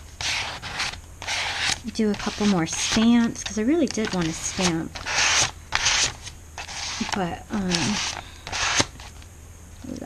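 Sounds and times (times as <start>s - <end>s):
plastic card scraping paper: 0.2s - 9.2s.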